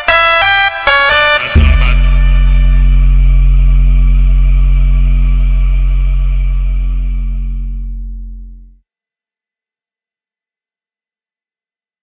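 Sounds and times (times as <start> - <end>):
deep synthesized bass note: 1.4 - 8.8.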